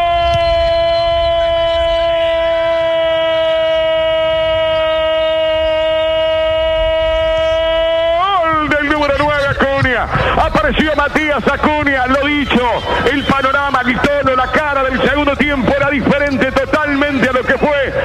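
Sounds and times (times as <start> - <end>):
rapid shouted speech: 1.2 - 18.0.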